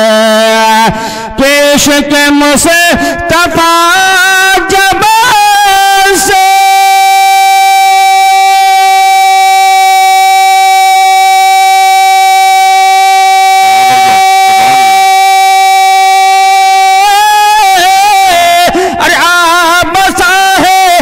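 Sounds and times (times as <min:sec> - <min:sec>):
man singing through loudspeakers: 0:00.0 - 0:21.0.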